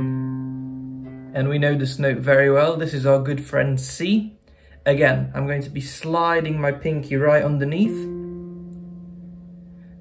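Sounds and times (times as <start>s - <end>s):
low guitar note plucked: 0.0s - 1.5s, 7.2s - 10.0s.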